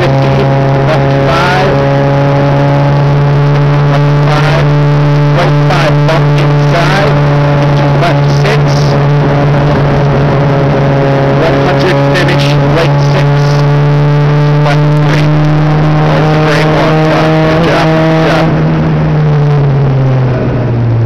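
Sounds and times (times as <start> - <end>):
race car engine at high revs: 0.0 - 21.0.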